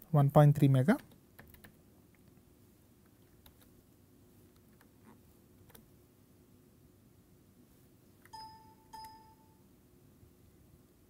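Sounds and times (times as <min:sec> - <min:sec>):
faint room hiss: 0:00.0 - 0:11.0
short electronic ding tones: 0:08.3 - 0:09.6.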